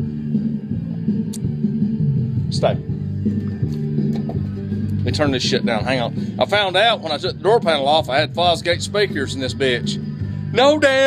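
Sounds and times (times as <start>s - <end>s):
bass-heavy music from car stereo: 0.0s - 11.0s.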